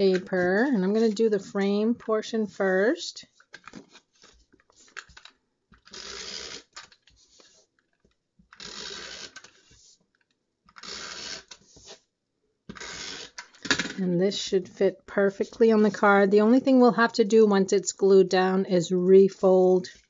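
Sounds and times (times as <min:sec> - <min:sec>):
tape runner drawn along paper: 0:03.3 - 0:12.1.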